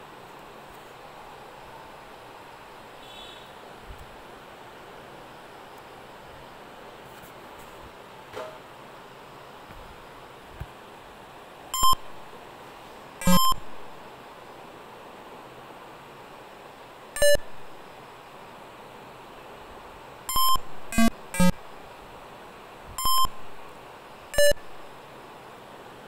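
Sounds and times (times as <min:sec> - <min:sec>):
electronic game blips: 0:11.8 - 0:12.1, 0:13.2 - 0:13.8, 0:17.2 - 0:17.4, 0:20.3 - 0:21.6, 0:23.0 - 0:23.4, 0:24.4 - 0:24.7.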